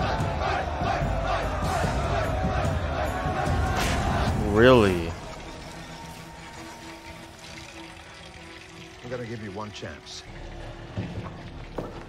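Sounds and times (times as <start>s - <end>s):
tense background score: 0.0s - 12.0s.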